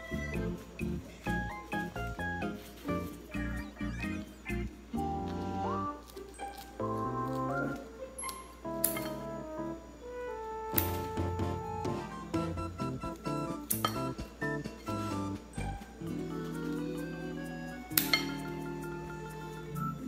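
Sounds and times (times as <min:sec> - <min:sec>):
background music melody: 0:00.0 - 0:20.0.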